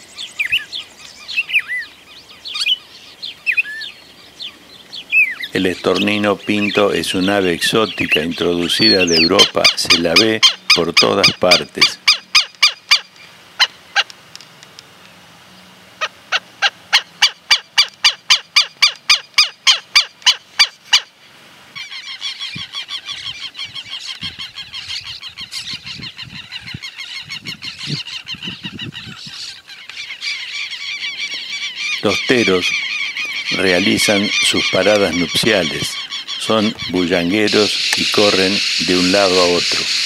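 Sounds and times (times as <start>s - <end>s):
lapwings calling: 0.0s - 14.5s, 15.6s - 40.0s
starling clicking song: 1.0s - 1.2s, 5.4s - 15.2s, 17.0s - 21.0s, 31.3s - 40.0s.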